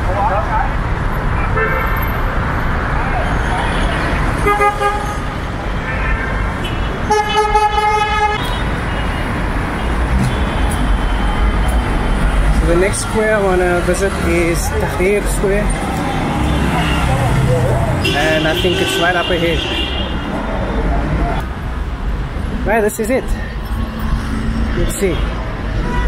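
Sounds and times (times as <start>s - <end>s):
rumble of engines: 0.0s - 26.0s
car horns honking: 1.4s - 2.2s, 3.2s - 11.8s, 15.9s - 20.4s, 24.7s - 26.0s.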